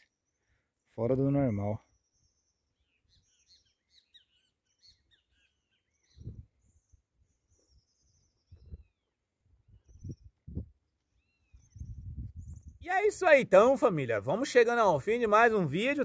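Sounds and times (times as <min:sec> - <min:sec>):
birds chirping and whistling: 0:01.8 - 0:12.8.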